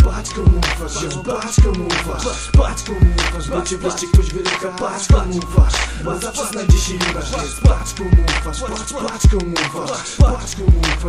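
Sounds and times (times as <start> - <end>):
heavy kick drums: 0.0 - 0.8, 1.6 - 1.9, 2.6 - 3.2, 4.2 - 4.4, 5.1 - 5.8, 6.7 - 7.0, 7.6 - 8.3, 10.2 - 11.0
rapped vocal hook: 0.0 - 11.0.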